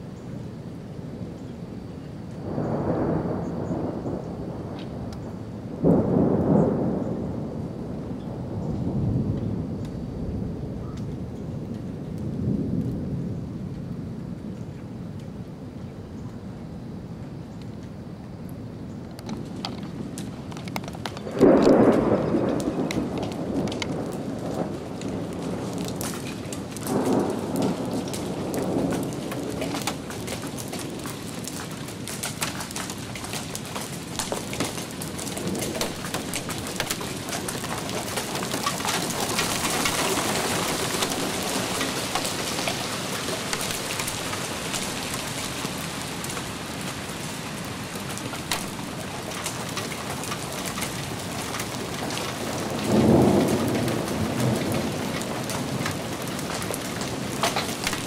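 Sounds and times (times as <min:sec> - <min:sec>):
heavy rain on patio and lawn: 0:00.0 - 0:58.0
thunder rumble: 0:01.0 - 0:58.0.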